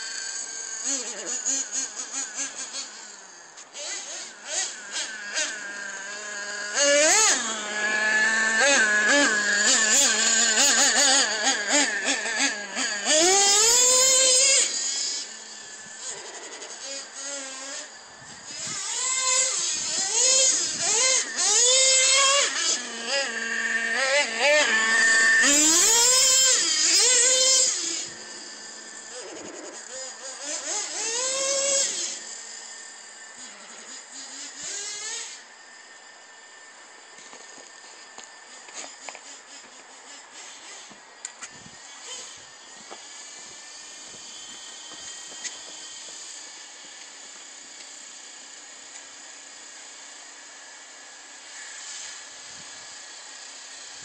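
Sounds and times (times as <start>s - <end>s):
toy truck motor whining: 0.0s - 54.0s.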